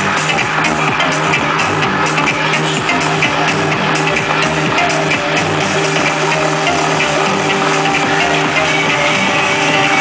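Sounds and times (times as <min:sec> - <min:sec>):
loud electronic dance music: 0:00.0 - 0:10.0.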